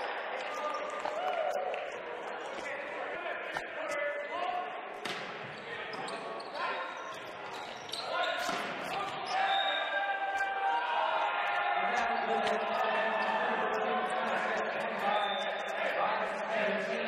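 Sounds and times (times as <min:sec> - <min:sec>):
players shouting and cheering: 0:00.0 - 0:17.0.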